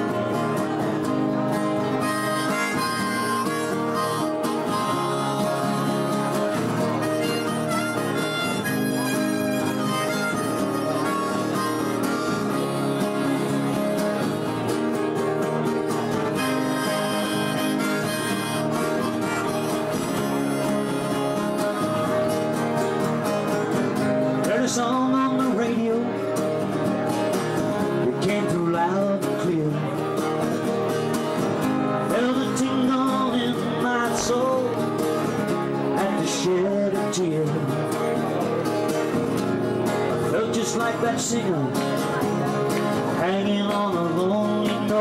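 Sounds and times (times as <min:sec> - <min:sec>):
acoustic guitars strumming: 0:00.0 - 0:45.0
harmonica melody: 0:00.6 - 0:14.6, 0:15.2 - 0:24.4.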